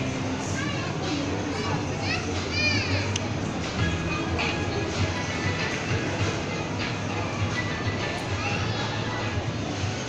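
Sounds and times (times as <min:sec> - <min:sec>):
children's voices: 0:00.3 - 0:03.3, 0:07.7 - 0:09.4.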